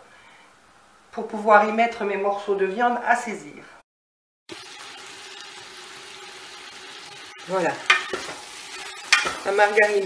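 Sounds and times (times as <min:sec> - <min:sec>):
meat sizzling in a pot: 0:04.5 - 0:10.0.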